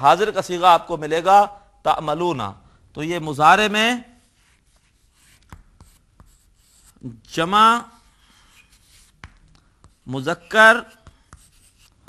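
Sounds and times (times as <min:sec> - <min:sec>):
chalk scratching on chalkboard: 0:04.2 - 0:07.1, 0:07.9 - 0:12.0
chalk taps: 0:04.3 - 0:07.0, 0:08.0 - 0:12.0.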